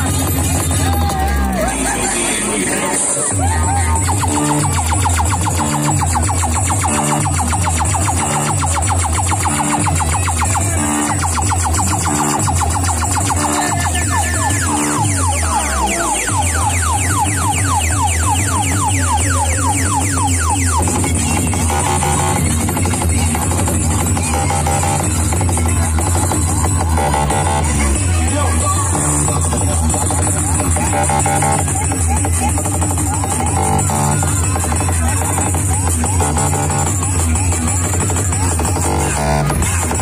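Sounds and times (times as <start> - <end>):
electronic dance music: 0.0 - 40.0
rising synth sweeps: 3.8 - 22.4
falling synth sweep: 4.0 - 22.4.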